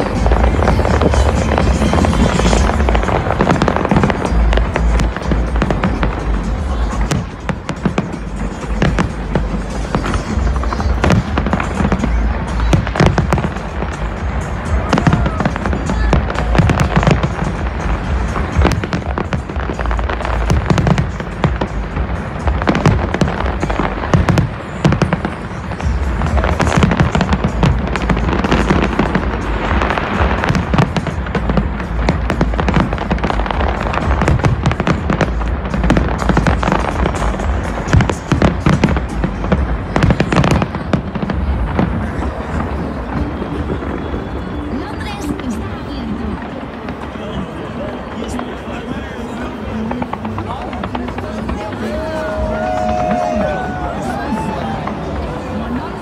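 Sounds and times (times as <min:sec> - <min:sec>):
fireworks cracks and bangs: 0:00.0 - 0:56.0.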